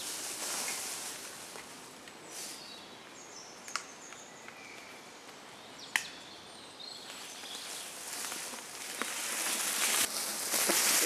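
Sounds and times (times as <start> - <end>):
bike tyres rolling through dry leaves: 0.0 - 2.6, 7.0 - 11.0.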